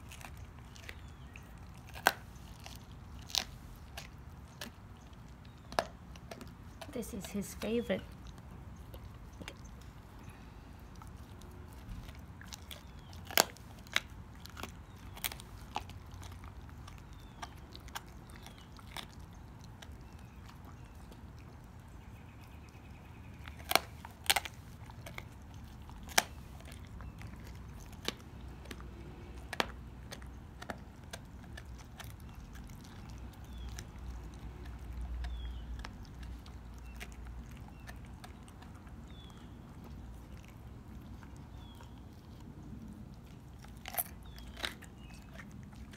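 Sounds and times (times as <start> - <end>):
bones crunching and cracking: 0.0 - 7.4, 8.2 - 45.9
dog chewing bones: 0.0 - 45.9.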